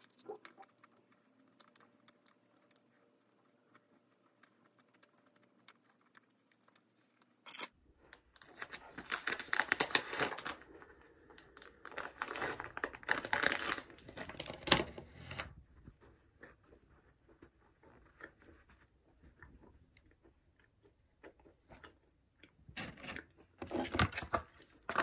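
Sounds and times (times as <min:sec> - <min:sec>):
plastic packet crinkling: 0:07.4 - 0:15.0.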